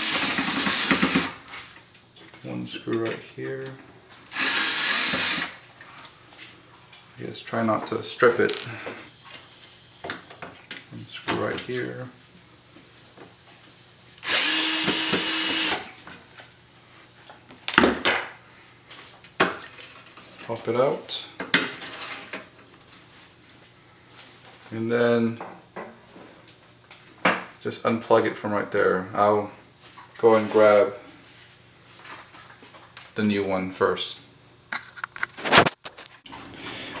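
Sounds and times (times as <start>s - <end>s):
cordless drill backing out screw: 0.0s - 1.4s, 4.3s - 5.5s, 14.2s - 15.8s.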